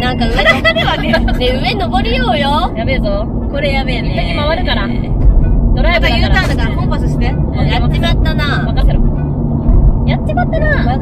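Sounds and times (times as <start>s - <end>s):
women talking: 0.0s - 5.1s, 5.8s - 9.1s
car engine drone from inside: 0.0s - 11.0s.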